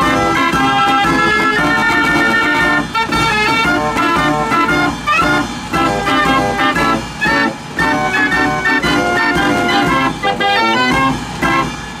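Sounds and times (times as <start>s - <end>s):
fairground organ playing: 0.0s - 12.0s.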